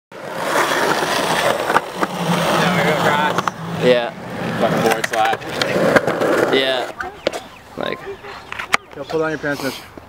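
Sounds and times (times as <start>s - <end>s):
skateboard wheels rolling on concrete: 0.1s - 10.0s
skateboard clacks: 0.3s - 3.6s, 4.4s - 7.4s
voices talking: 2.1s - 10.0s.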